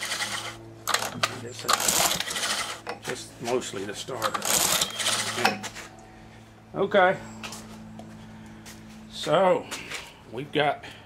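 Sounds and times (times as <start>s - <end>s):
engine turning over: 0.0s - 3.0s, 4.2s - 5.7s
recoil starter rope rattling: 0.0s - 3.1s, 4.2s - 5.6s.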